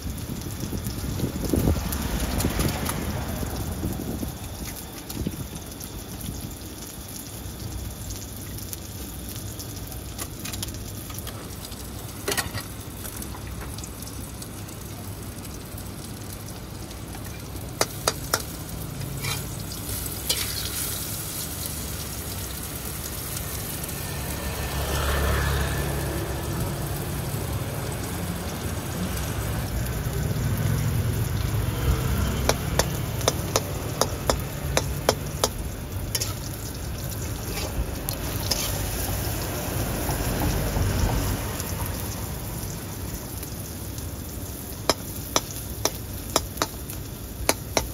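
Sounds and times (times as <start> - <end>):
omelette sizzling in hot oil: 0.0 - 47.9.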